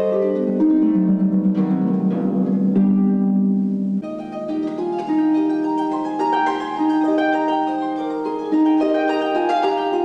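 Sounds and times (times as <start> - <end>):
harp playing: 0.0 - 10.0.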